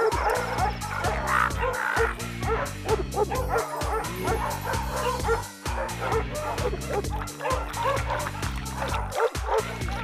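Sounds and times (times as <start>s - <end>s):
cartoon soundtrack music: 0.0s - 10.0s
dogs yelping and barking: 0.0s - 10.0s.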